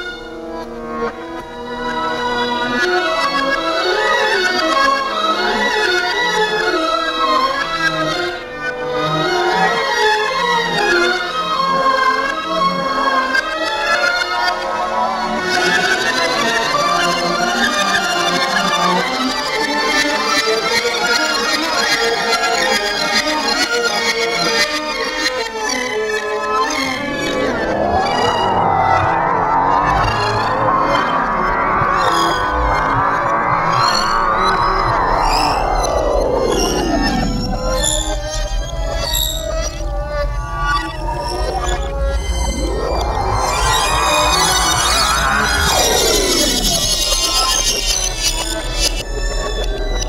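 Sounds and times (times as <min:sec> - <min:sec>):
music sample with sweeping pitch: 0:26.3 - 0:38.9, 0:39.8 - 0:47.4.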